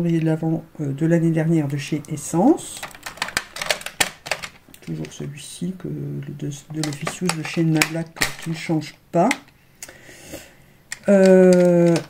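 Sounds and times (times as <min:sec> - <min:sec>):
makeup cases clicking together: 0:02.8 - 0:05.2, 0:06.7 - 0:08.7, 0:09.3 - 0:09.6, 0:10.9 - 0:12.0.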